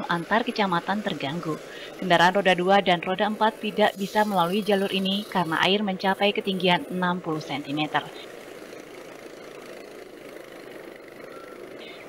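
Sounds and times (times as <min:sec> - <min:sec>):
motor scooters running: 0:00.0 - 0:12.0
water splashing around wheels: 0:00.0 - 0:12.0.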